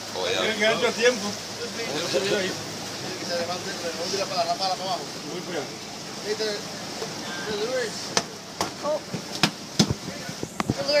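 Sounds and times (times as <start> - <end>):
sharp knocks and thuds: 8.1 - 10.8.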